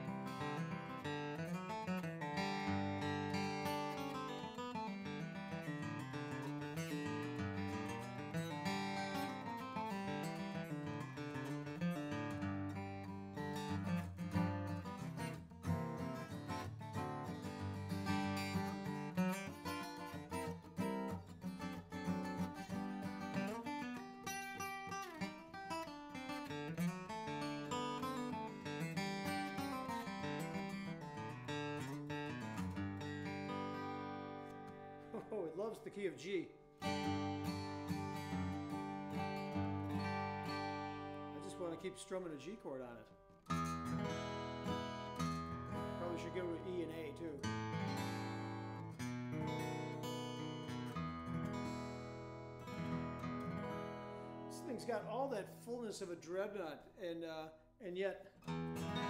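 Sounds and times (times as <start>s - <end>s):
acoustic guitar chords: 0.0s - 57.1s, 57.9s - 59.0s.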